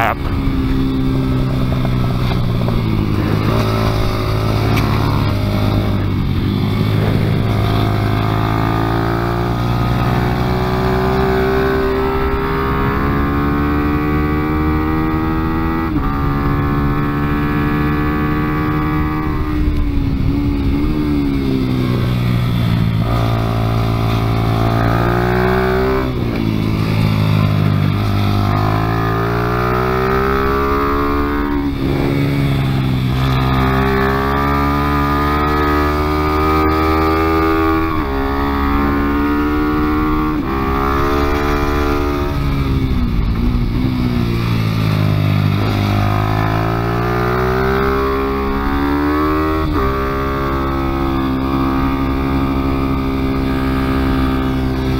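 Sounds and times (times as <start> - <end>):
small motorcycle engine revving: 0.0 - 54.9.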